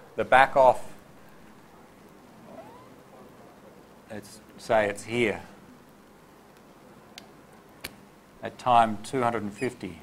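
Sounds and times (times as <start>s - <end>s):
faint steady hiss: 0.0s - 10.0s
faint short rising squeak: 2.4s - 3.0s.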